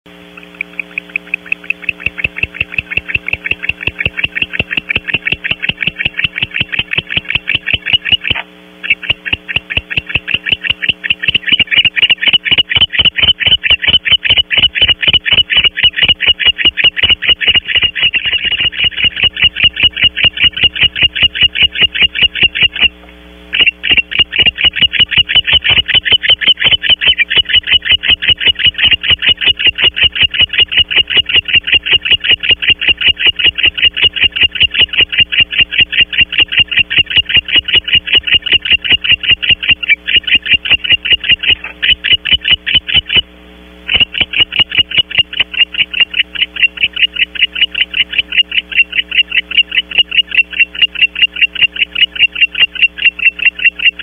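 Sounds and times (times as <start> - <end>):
owl ticking calls: 0.2 - 54.0.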